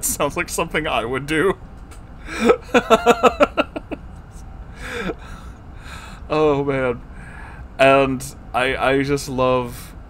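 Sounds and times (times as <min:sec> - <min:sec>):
air conditioner hum: 0:00.0 - 0:10.0.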